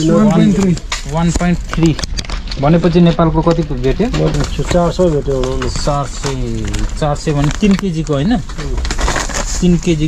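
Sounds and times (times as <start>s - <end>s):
man talking: 0.0s - 2.0s, 2.6s - 8.9s, 9.5s - 10.0s
plastic bag crinkling: 1.6s - 10.0s.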